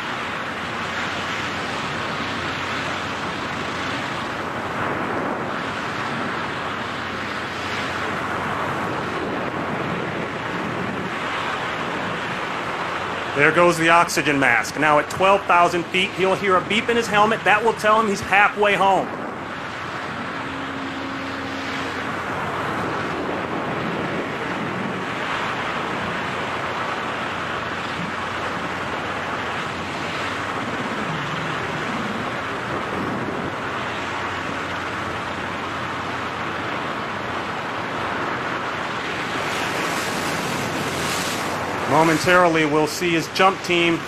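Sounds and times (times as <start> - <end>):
wind roar on microphone: 0.0 - 44.0.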